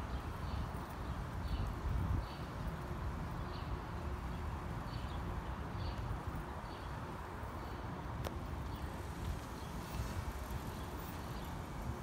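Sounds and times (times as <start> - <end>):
footsteps on pavement: 8.2 - 12.0.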